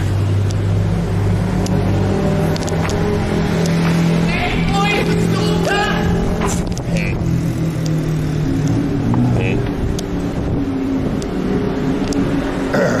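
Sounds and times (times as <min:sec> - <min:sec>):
vehicle engines passing: 0:00.0 - 0:13.0.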